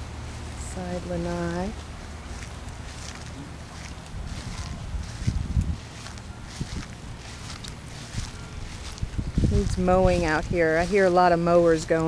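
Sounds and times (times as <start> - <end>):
distant lawn mowers droning: 0.0 - 12.0
footsteps on grass: 0.2 - 12.0
wind gusting on microphone: 4.0 - 11.3.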